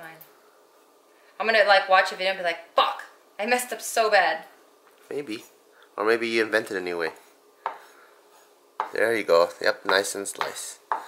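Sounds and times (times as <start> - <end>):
knife chopping on wooden board: 7.1 - 8.0, 8.8 - 9.1, 9.7 - 11.0.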